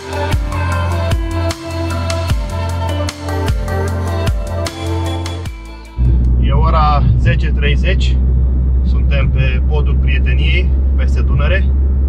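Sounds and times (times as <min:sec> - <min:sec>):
car cabin road drone: 0:00.0 - 0:12.0.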